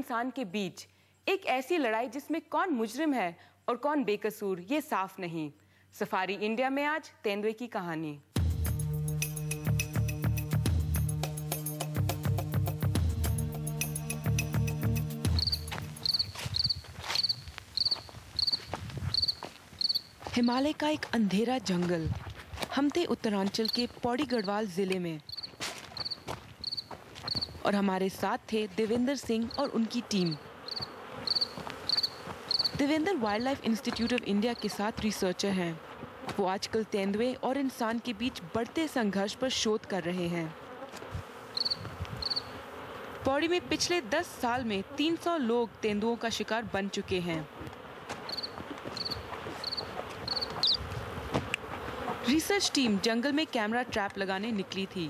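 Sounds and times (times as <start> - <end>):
music: 8.4 - 16.1
steady hiss: 13.5 - 20.3
cricket chirping: 13.9 - 20.2, 25.3 - 27.6, 29.4 - 32.8, 41.5 - 42.5, 48.3 - 50.8.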